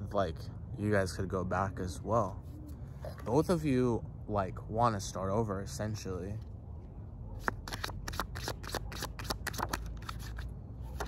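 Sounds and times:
cards shuffling by hand: 7.4s - 11.0s.

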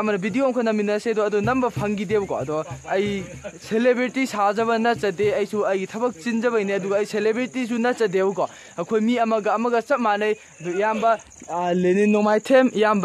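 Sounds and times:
high-pitched insect drone: 0.0s - 13.0s
man talking: 0.0s - 13.0s.

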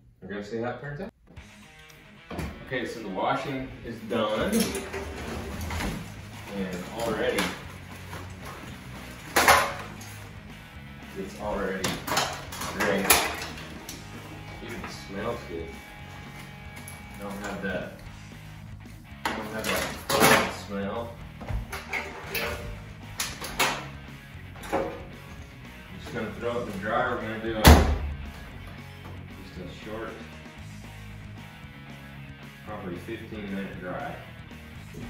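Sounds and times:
background music: 1.1s - 35.0s
knocks and handling sounds: 4.4s - 18.1s, 21.2s - 26.8s.

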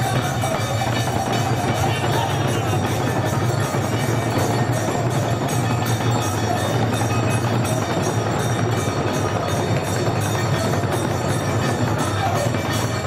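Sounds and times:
barrel drums playing fast rhythm: 0.0s - 13.0s
bright ringing percussion: 0.0s - 13.0s.

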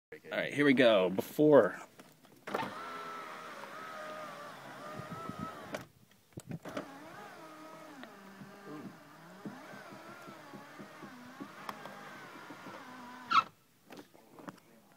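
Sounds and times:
power window motor whine: 2.5s - 5.9s, 6.7s - 13.4s.

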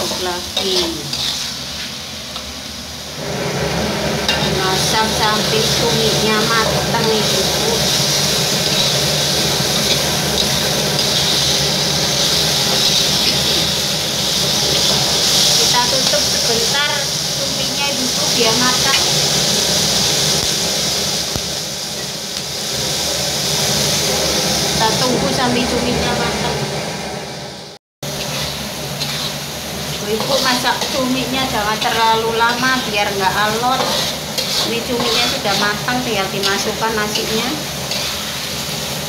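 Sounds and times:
food sizzling in a wok: 0.0s - 39.0s
metal spatula stirring: 0.1s - 1.9s, 7.0s - 13.7s, 28.2s - 29.5s, 30.1s - 31.0s, 31.8s - 38.6s.

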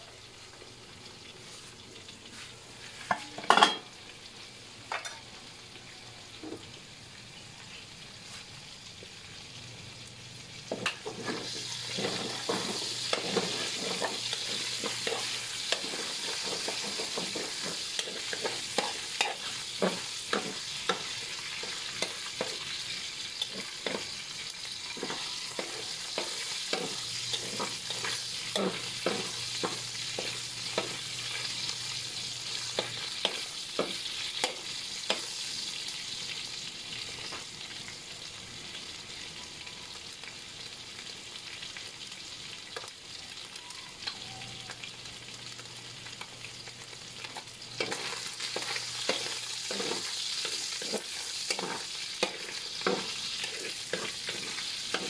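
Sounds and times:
meat sizzling in oil: 0.0s - 55.0s
spatula scraping a wok: 10.7s - 31.8s, 47.8s - 55.0s.

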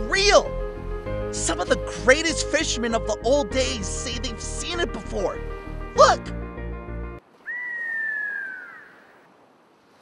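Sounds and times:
background music: 0.0s - 7.2s
whistled note sliding downward: 7.5s - 9.2s.

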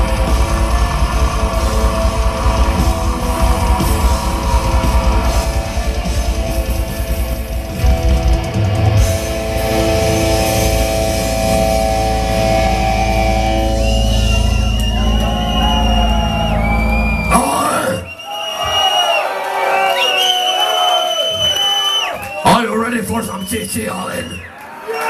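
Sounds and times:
heavy metal band chord: 0.0s - 17.4s
crowd cheering and shouting: 0.0s - 25.0s.

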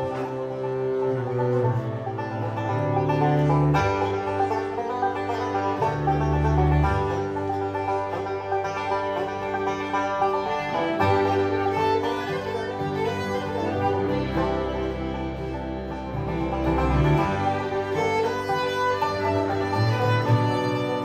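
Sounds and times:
plucked string notes: 0.0s - 21.0s
sustained low bass notes: 0.0s - 21.0s.

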